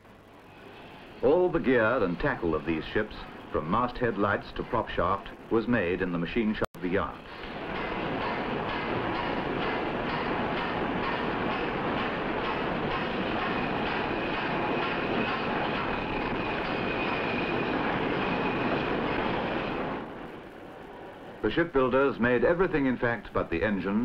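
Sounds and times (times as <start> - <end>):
faint high whine: 0.0 - 24.0
machinery running: 0.0 - 24.0.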